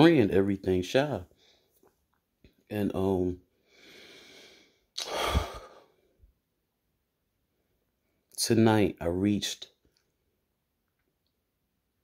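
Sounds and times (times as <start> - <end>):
woman sighing: 5.0 - 5.8.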